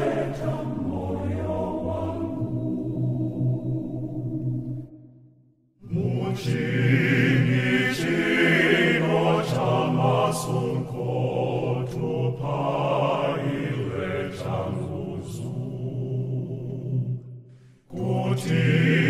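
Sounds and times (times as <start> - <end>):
choir singing a hymn: 0.0 - 4.9, 5.8 - 19.0.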